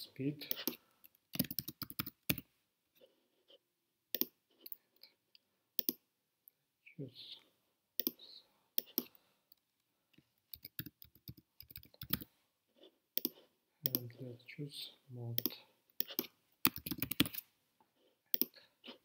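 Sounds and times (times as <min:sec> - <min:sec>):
computer mouse clicks: 0:04.1 - 0:04.8, 0:05.8 - 0:06.0, 0:08.0 - 0:08.2, 0:10.5 - 0:12.3, 0:13.2 - 0:14.0, 0:15.4 - 0:17.4, 0:18.3 - 0:18.6
keyboard keystrokes: 0:15.4 - 0:17.4.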